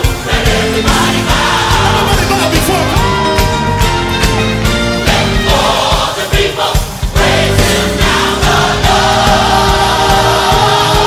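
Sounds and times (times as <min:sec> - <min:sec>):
gospel choir singing: 0:00.0 - 0:02.9, 0:04.5 - 0:11.0
band bass and drums: 0:00.0 - 0:11.0.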